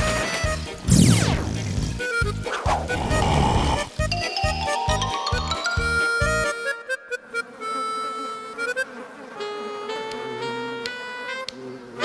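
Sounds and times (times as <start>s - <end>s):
bouncy cartoon music: 0.0s - 8.1s.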